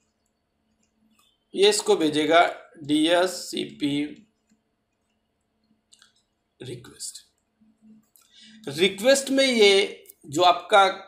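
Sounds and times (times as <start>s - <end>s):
stylus clicking on drawing tablet: 0.0s - 1.4s, 4.1s - 6.4s
man's voice: 8.6s - 11.0s.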